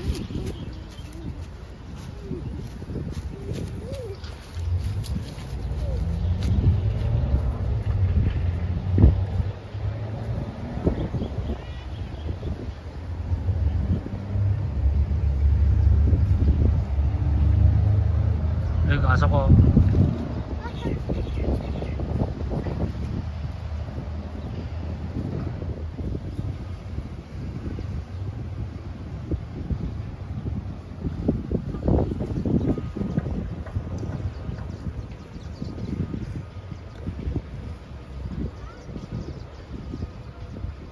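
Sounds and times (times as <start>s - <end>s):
wind rumble on microphone: 0.0s - 40.9s.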